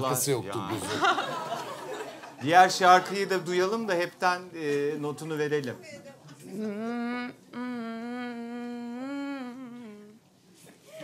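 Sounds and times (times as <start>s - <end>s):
woman humming into microphone: 6.5s - 10.2s.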